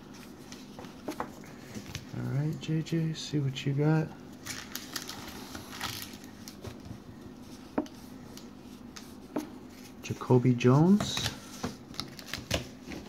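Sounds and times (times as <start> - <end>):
card pack rustling: 4.4 - 6.8, 10.8 - 13.0.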